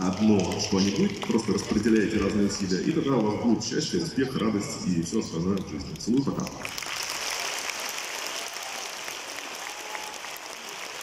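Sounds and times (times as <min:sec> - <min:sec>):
audience applause: 0:00.0 - 0:03.4, 0:06.3 - 0:11.0.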